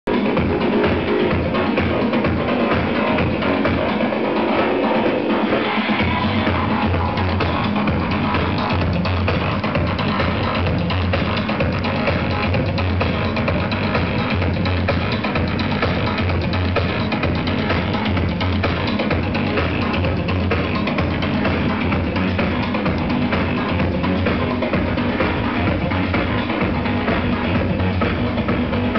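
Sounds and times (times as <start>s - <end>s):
deep bass line: 0.0s - 28.9s
electronic dance music: 0.0s - 28.9s.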